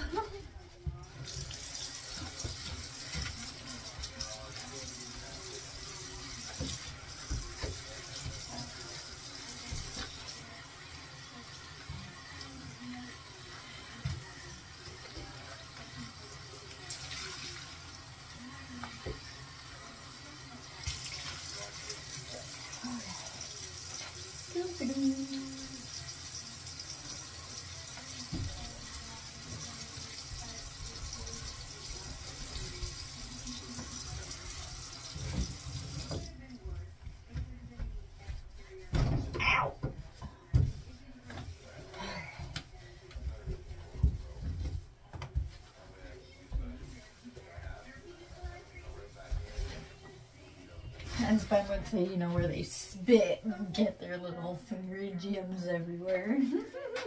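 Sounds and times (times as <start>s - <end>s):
water running from tap into basin: 0.0s - 36.5s.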